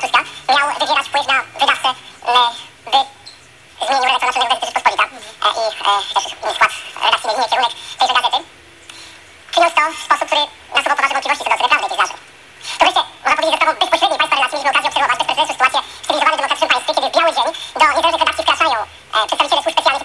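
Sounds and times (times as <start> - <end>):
person talking: 0.0 - 20.0.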